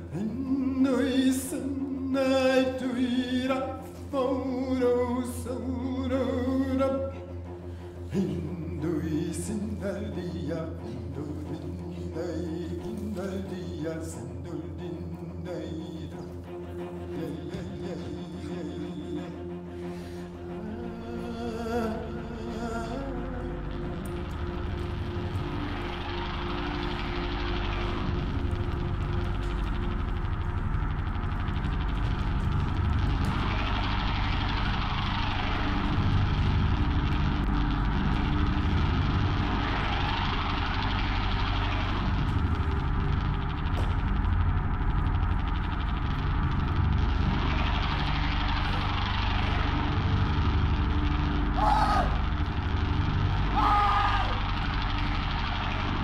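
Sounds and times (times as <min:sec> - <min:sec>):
steady low rumble: 0:00.0 - 0:56.0
slow whooshing sweeps: 0:21.7 - 0:53.6.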